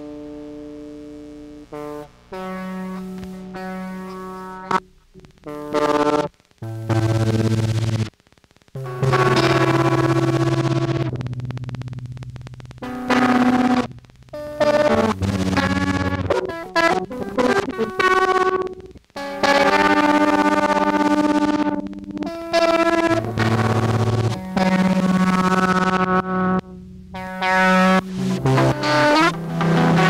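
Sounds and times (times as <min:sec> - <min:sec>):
effected electric guitar notes: 0:00.0 - 0:08.1, 0:08.8 - 0:30.0
synthesizer: 0:08.8 - 0:30.0.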